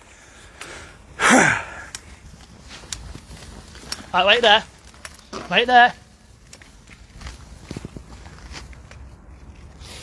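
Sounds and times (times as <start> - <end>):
faint footsteps: 2.0 - 9.8.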